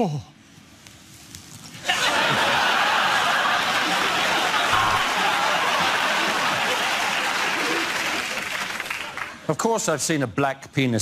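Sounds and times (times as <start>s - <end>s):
audience laughing and applauding: 1.8s - 9.5s.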